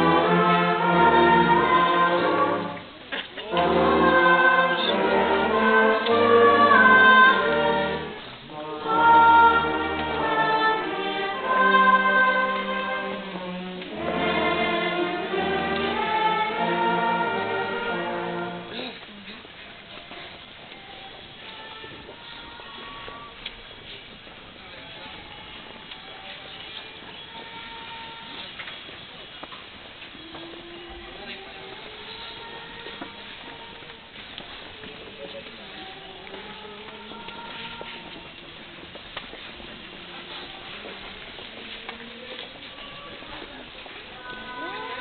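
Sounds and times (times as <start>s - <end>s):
choir singing: 0.0s - 18.8s, 30.7s - 33.9s, 35.6s - 38.3s, 44.1s - 45.0s
instrumental accompaniment: 0.0s - 18.9s
faint background murmur: 0.0s - 45.0s.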